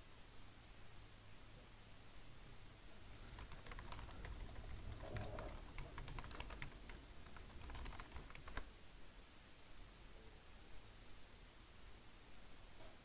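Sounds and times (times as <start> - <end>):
computer keyboard typing: 3.2 - 8.7.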